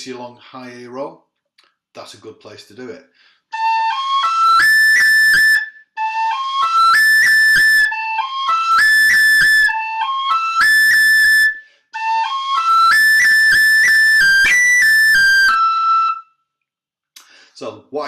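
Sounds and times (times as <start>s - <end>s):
tin whistle melody: 3.5s - 16.5s.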